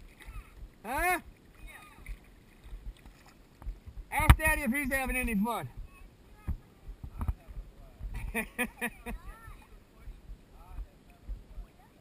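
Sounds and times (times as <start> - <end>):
water lapping and sloshing: 0.0 - 12.0
soft low thumps: 2.0 - 3.0, 3.6 - 12.0
faint distant voices: 5.6 - 12.0.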